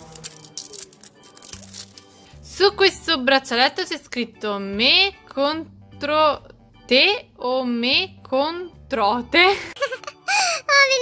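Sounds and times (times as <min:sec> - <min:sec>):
plastic wrapping crinkling and tearing: 0:00.0 - 0:02.3
quiet background music: 0:00.0 - 0:11.0.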